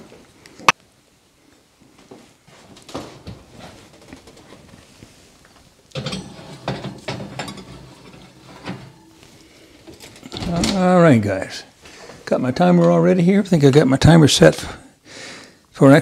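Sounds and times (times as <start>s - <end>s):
metal pan clattering and scraping: 6.0s - 10.4s.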